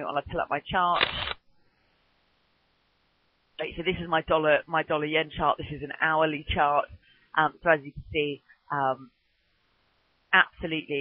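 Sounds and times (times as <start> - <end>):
woman speaking: 0.0 - 1.0, 3.6 - 9.2, 10.4 - 11.0.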